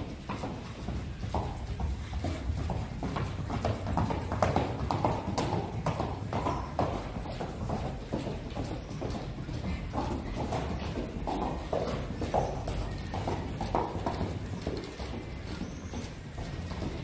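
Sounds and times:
horse hoofbeats on dirt: 0:00.0 - 0:17.0.

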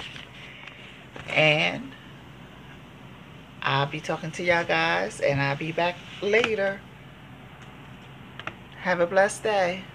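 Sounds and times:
woman speaking: 0:01.2 - 0:02.1, 0:03.6 - 0:06.9, 0:08.8 - 0:09.9.

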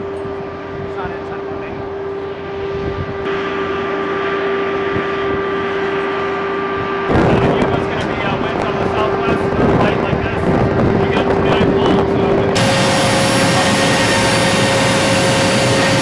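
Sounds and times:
wind rumbling on microphone: 0:00.0 - 0:03.9, 0:04.8 - 0:16.0
machinery whine: 0:00.0 - 0:16.0.

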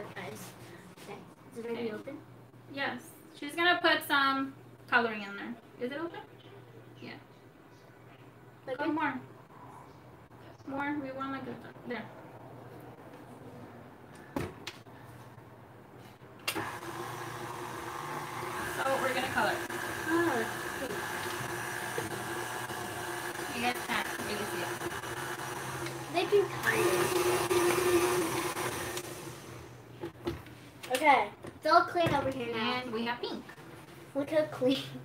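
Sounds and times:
stand mixer motor running: 0:16.6 - 0:29.8.

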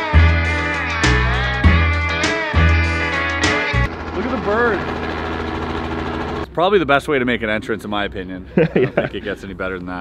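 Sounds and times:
helicopter engine and rotor beating: 0:03.0 - 0:06.5.

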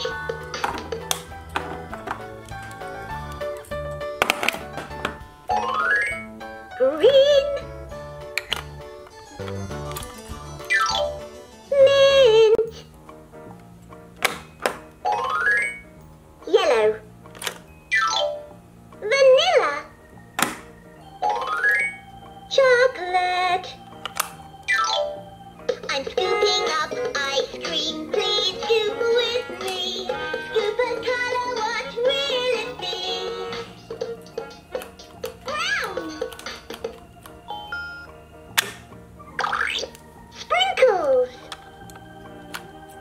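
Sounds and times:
toy electronic sound effect: 0:09.2 - 0:12.3, 0:17.9 - 0:18.5, 0:21.2 - 0:22.0
toy synthesized rising sound effect: 0:21.0 - 0:22.8
sharp plastic click: 0:38.6 - 0:38.8.

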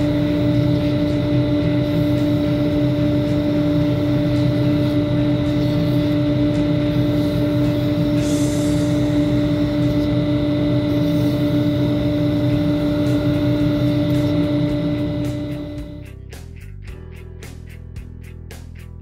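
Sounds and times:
burn wire hissing on wood: 0:00.0 - 0:15.4
wood lathe motor hum: 0:00.0 - 0:16.0.

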